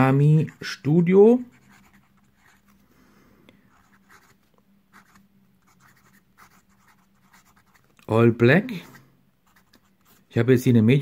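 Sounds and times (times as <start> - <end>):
fountain pen scratching on paper: 1.5 - 2.7, 3.7 - 7.8, 8.8 - 10.2.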